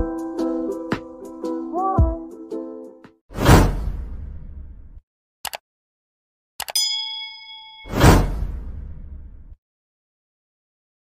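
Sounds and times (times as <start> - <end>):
whoosh: 7.9 - 9.6.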